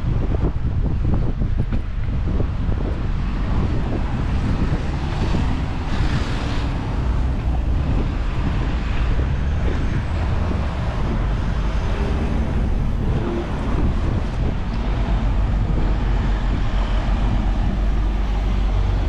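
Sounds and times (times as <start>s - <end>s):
outdoor street ambience: 0.0s - 19.0s
wind rumbling on microphone: 0.0s - 19.0s.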